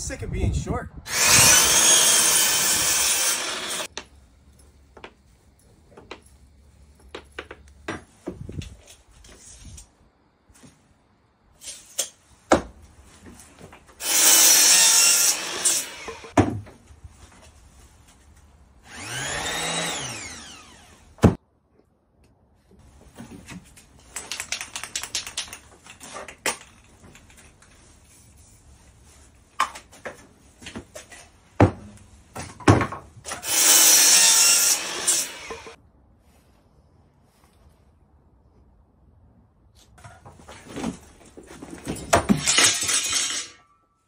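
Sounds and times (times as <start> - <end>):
power miter saw cutting wood: 1.1 - 3.9, 14.0 - 16.4, 18.8 - 21.2, 33.3 - 35.8.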